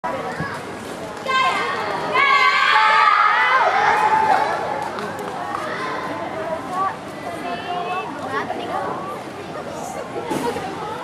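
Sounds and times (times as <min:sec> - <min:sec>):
children shouting and cheering: 0:01.3 - 0:04.8.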